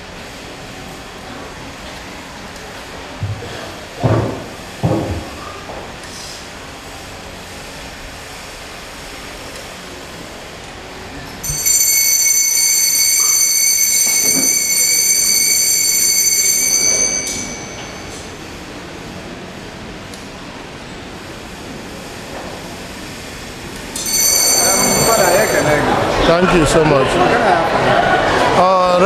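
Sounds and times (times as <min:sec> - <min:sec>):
altar bells ringing: 0:11.4 - 0:18.7, 0:23.9 - 0:26.2.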